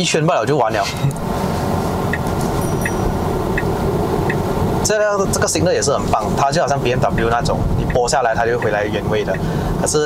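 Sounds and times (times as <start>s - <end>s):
road and tyre noise in car: 0.0s - 10.0s
turn signal ticking: 1.1s - 10.0s.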